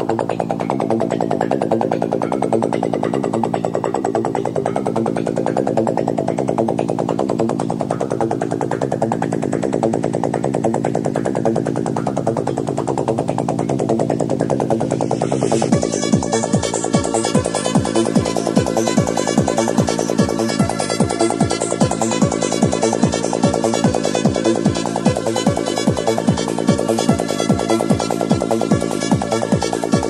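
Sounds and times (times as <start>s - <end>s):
electronic dance music synth pattern: 0.0s - 30.0s
hissy synth sweep: 0.0s - 30.0s.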